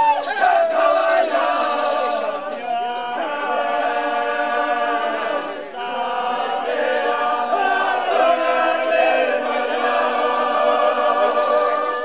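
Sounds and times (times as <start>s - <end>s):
men chanting together: 0.2s - 12.0s.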